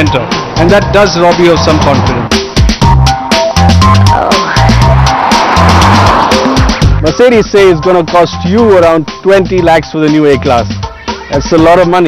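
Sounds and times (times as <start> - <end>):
music with steady beat: 0.0 - 12.0
car driving past: 4.4 - 7.0.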